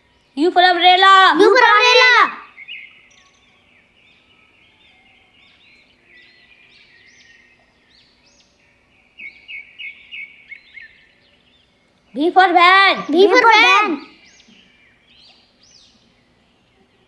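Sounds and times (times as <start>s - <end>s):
birds chirping and singing: 0.0s - 17.0s.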